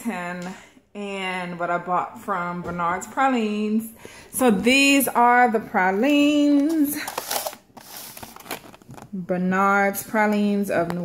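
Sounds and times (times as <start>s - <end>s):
plastic container crinkling: 6.6s - 9.2s.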